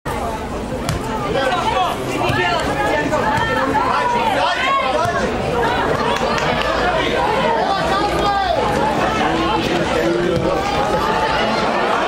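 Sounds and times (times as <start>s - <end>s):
spectators talking and calling out: 0.1s - 12.0s.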